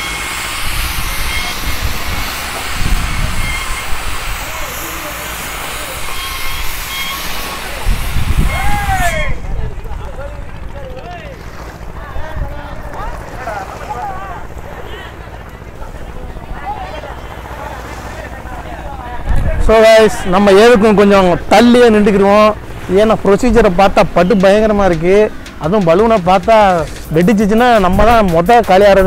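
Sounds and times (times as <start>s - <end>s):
wind buffeting microphone: 0.4s - 4.8s, 7.6s - 28.6s
distant men calling out: 8.5s - 26.8s.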